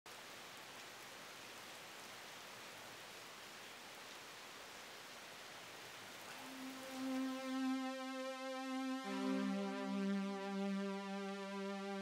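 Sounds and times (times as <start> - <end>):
faint steady hiss: 0.1 - 12.0.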